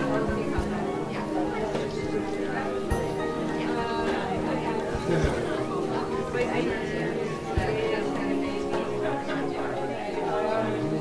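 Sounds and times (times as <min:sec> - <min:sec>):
background music: 0:00.0 - 0:11.0
people chatting: 0:00.0 - 0:11.0.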